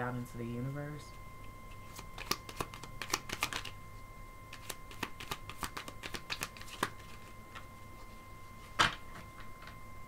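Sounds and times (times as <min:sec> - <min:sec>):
cards being shuffled: 0:01.8 - 0:03.8, 0:04.5 - 0:07.3.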